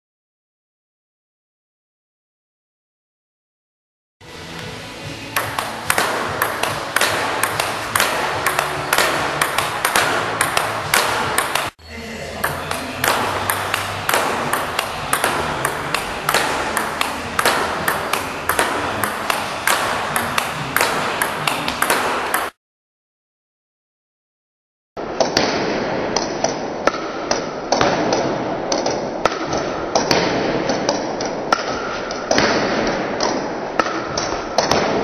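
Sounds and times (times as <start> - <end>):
background music: 4.2 - 22.5
table-tennis ball clicking in rally: 5.4 - 11.8, 12.4 - 22.6, 25.2 - 35.0.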